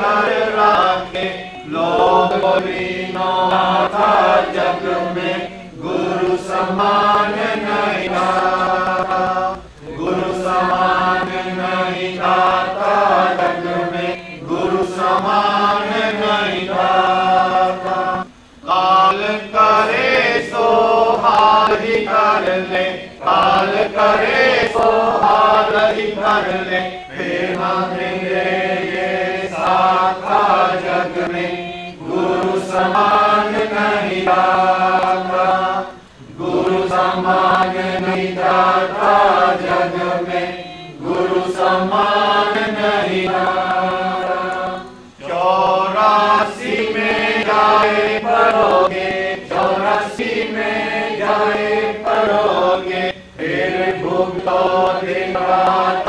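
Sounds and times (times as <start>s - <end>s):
person singing devotional song: 0.0s - 56.0s.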